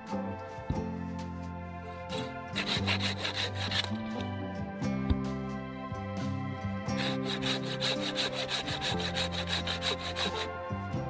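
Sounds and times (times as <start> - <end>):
background music: 0.0 - 11.0
pruning saw cutting branch: 2.1 - 4.3, 7.0 - 10.5.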